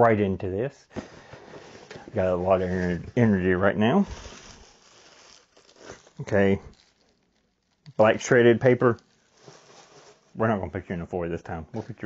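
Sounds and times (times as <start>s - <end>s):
paper packing torn and rustled: 2.5s - 10.3s.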